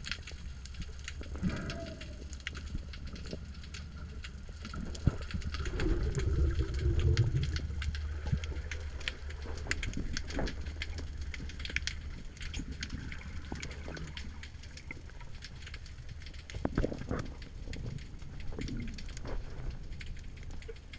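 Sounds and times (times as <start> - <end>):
small scattered clicks and crackles: 0.0 - 20.9
underwater rumble of moving water: 0.0 - 20.9.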